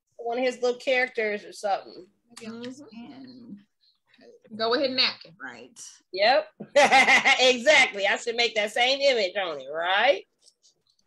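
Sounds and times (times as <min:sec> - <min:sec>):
indistinct talking over video call: 0:00.0 - 0:11.0.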